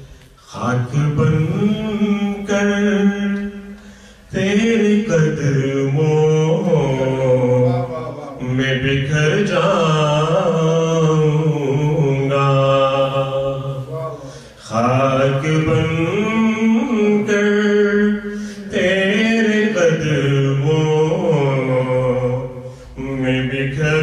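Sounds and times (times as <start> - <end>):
man chanting: 0.0 - 24.0.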